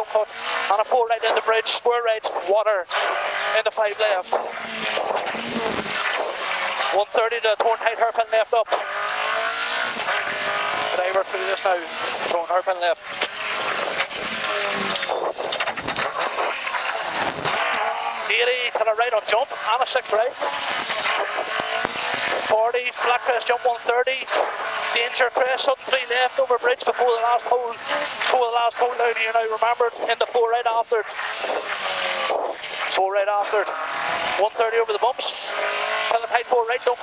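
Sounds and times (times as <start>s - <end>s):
tyre and road noise: 0.0s - 37.0s
car engine from inside cabin: 2.2s - 37.0s
sharp engine cracks: 8.7s - 11.3s, 13.0s - 18.4s, 19.2s - 22.6s.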